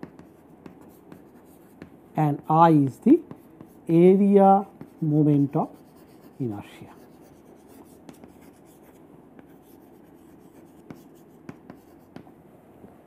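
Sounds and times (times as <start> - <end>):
chalk scratching on chalkboard: 0.0 - 2.0, 3.1 - 12.2
chalk tapping: 0.0 - 2.0, 2.8 - 12.3.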